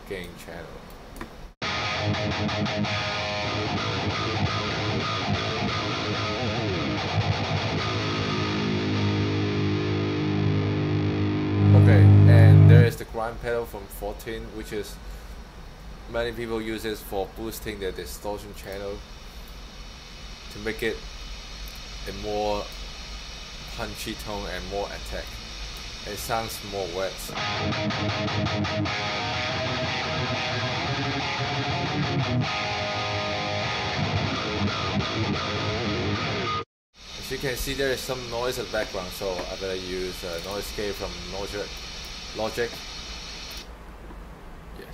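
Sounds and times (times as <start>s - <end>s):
distorted electric guitar: 1.6s - 13.0s, 25.8s - 36.6s.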